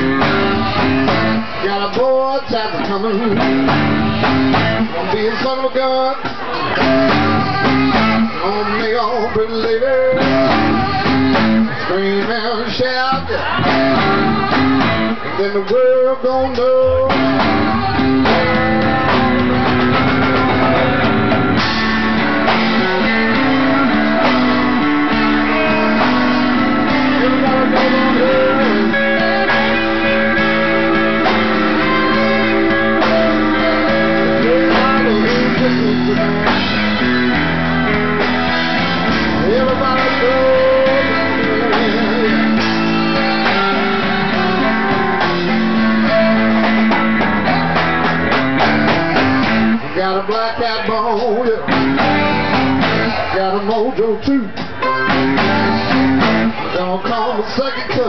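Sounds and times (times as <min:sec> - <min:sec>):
guitar bent lead notes: 0:00.0 - 0:57.3
blues band playing: 0:00.0 - 0:58.0.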